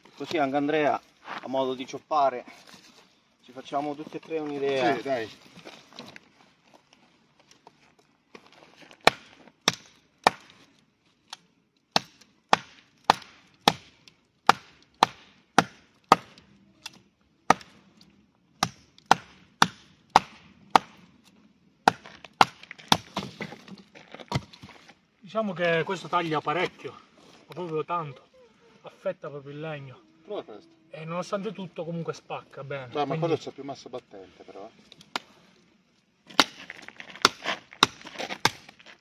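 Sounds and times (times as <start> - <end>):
knife chopping into tree trunk: 9.0 - 10.5, 18.6 - 21.0, 21.9 - 24.7, 36.3 - 38.8.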